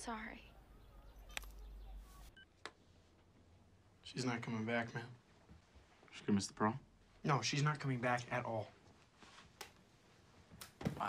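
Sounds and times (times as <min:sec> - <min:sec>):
phone clicks: 0:01.3 - 0:01.7.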